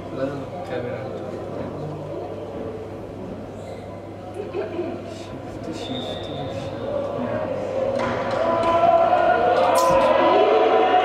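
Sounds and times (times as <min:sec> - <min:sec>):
voices echoing in a hall: 0:00.0 - 0:11.0
long held shouts: 0:08.3 - 0:11.0.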